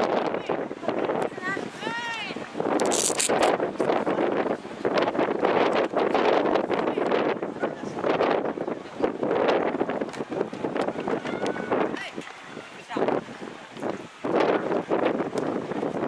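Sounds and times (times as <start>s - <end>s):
wind buffeting microphone: 0.0s - 16.0s
crowd cheering and shouting: 10.5s - 16.0s.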